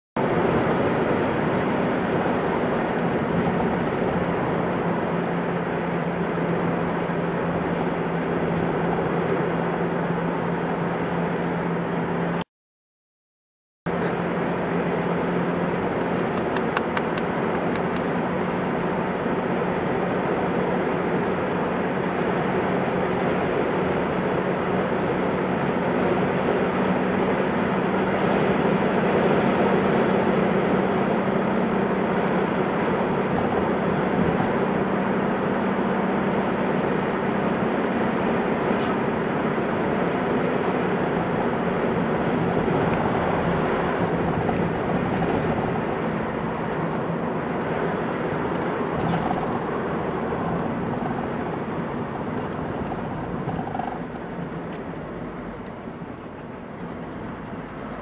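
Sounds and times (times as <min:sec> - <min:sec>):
car engine hum: 0:00.2 - 0:12.4, 0:13.9 - 0:58.0
road and wind noise: 0:00.2 - 0:12.5, 0:13.9 - 0:58.0.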